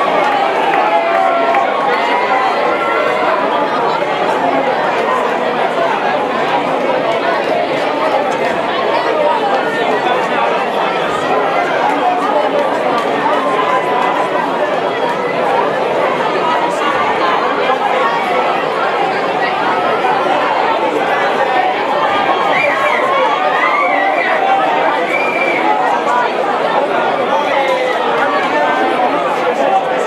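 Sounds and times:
large audience chattering: 0.0s - 30.0s.

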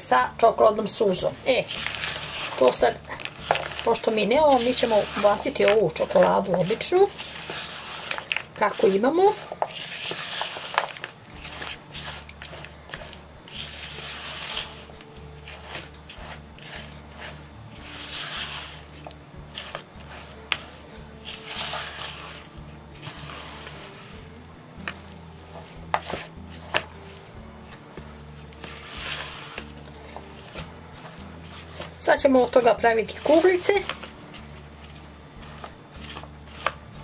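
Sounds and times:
quiet background music: 0.0s - 37.0s
spatula scraping dough in jug: 1.1s - 37.0s.

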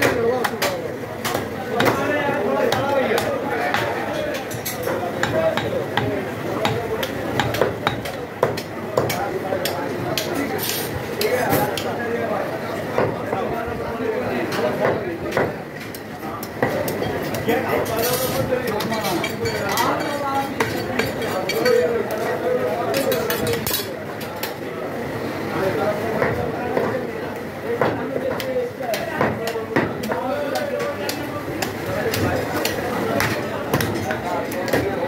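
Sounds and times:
meat cleaver chopping on wood: 5.2s - 10.4s, 27.8s - 35.0s.

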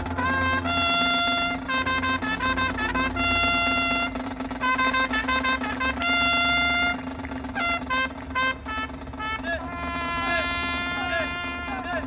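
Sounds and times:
marching band brass notes: 0.0s - 12.0s.

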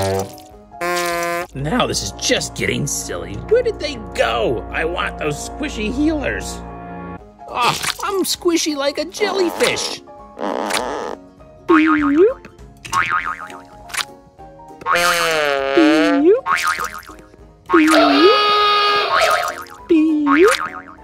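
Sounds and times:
music: 0.0s - 21.0s
cartoon boing sound effects: 11.7s - 13.6s, 17.7s - 21.0s.

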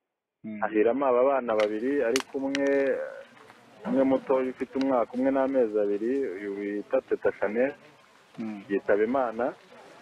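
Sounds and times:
person talking: 1.4s - 9.7s
sharp clicks: 1.5s - 2.9s.

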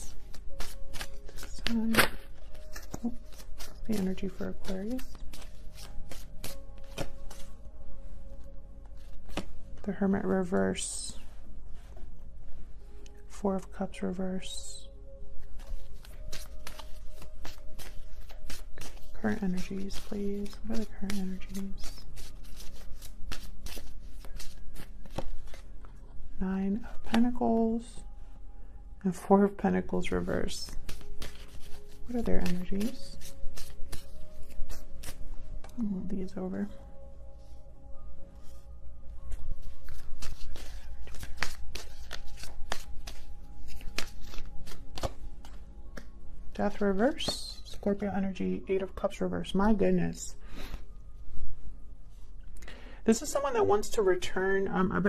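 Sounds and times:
cards being shuffled by hand: 0.0s - 7.6s, 8.4s - 9.9s, 15.5s - 26.0s, 30.4s - 35.7s, 39.3s - 46.1s.

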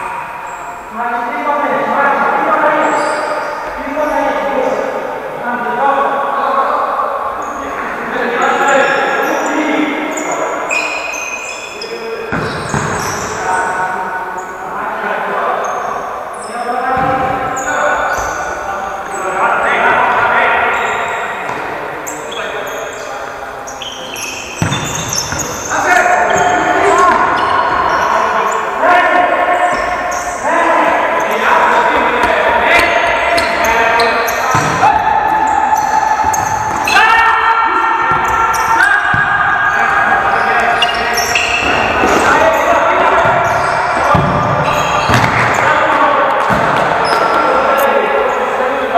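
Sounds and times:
players' voices: 0.0s - 48.9s
football kicked and bouncing: 24.6s - 25.1s, 44.1s - 45.5s.

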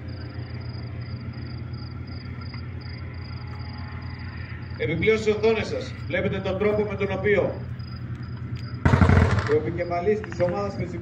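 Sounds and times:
crickets chirping: 0.0s - 11.0s
low steady rumble: 0.0s - 11.0s.

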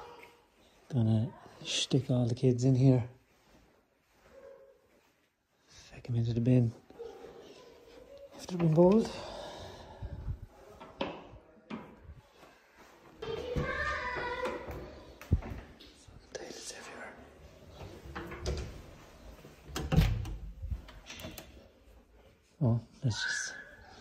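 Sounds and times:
doors opening and shutting: 17.6s - 21.7s.

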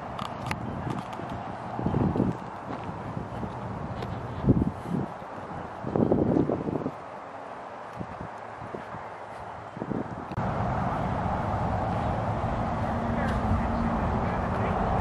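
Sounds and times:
wind on microphone: 0.0s - 7.1s, 7.9s - 15.0s
footsteps: 0.8s - 7.0s, 11.8s - 14.8s
steady low drone: 10.4s - 15.0s.

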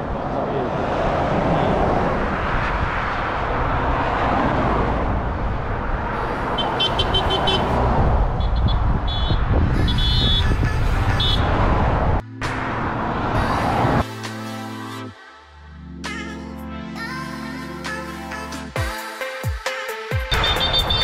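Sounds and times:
cars driving past on highway: 0.0s - 14.1s
car horns short beeps: 6.6s - 7.8s, 8.4s - 11.5s, 20.3s - 21.0s.

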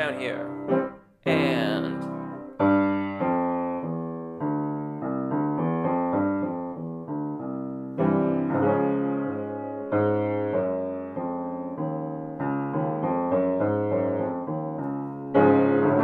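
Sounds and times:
grand piano notes and chords: 0.0s - 16.0s.

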